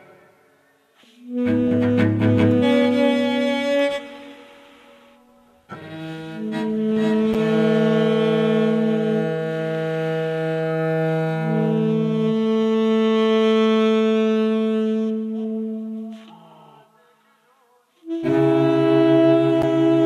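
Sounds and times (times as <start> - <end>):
cello long notes: 1.1 - 16.9, 18.0 - 20.0
saxophone long notes: 1.2 - 16.9, 18.0 - 20.0.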